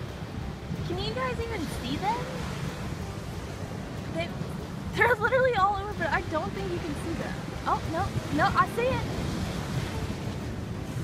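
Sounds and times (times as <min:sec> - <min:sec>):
surf washing on shore: 0:00.0 - 0:11.0
wind buffeting microphone: 0:00.0 - 0:11.0.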